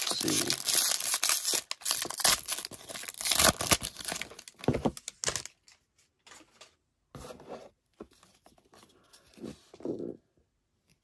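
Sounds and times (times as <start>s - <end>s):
foil wrapper tearing open: 0.0s - 4.5s
wrapper and cards rustling: 0.0s - 6.6s.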